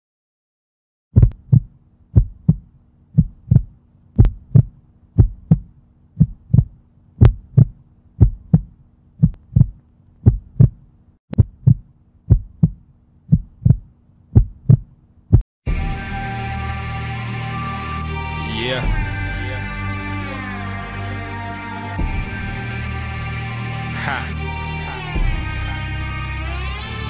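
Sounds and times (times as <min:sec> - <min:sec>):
heartbeat thumps: 0:01.2 - 0:15.4
music: 0:15.6 - 0:27.0.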